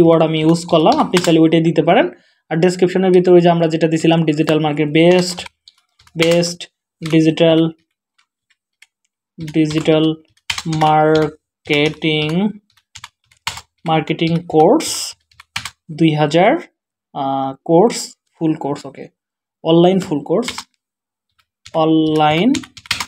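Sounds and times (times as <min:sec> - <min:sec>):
computer keyboard typing: 0:00.0 - 0:01.6, 0:04.0 - 0:15.9, 0:20.4 - 0:23.0
man talking: 0:00.0 - 0:05.5, 0:06.2 - 0:07.8, 0:09.4 - 0:12.6, 0:13.8 - 0:15.2, 0:15.9 - 0:20.7, 0:21.7 - 0:22.7.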